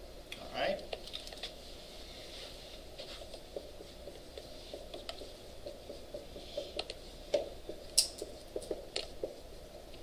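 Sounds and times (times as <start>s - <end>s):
marker writing on whiteboard: 2.4s - 10.0s.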